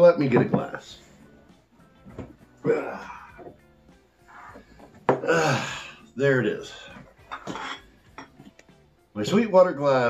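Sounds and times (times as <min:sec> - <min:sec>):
glass and bottle clinking on table: 0:00.3 - 0:00.7, 0:04.8 - 0:05.3, 0:07.0 - 0:08.6.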